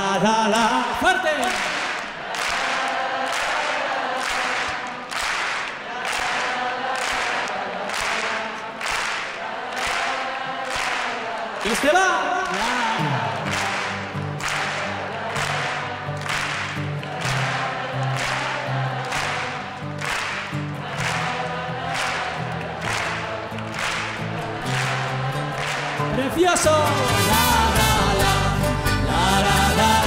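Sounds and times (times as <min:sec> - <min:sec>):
crowd clapping in rhythm: 0:00.0 - 0:30.0
crowd singing along: 0:00.0 - 0:30.0.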